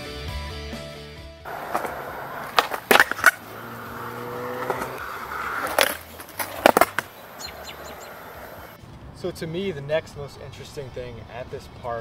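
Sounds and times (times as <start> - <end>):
skateboard wheels rolling on concrete: 1.5 - 8.8
high falling chirps: 6.5 - 8.8.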